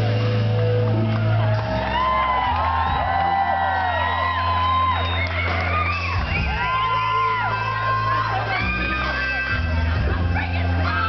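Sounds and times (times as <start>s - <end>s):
live rock band music: 0.0s - 11.0s
audience whoops: 0.6s - 11.0s.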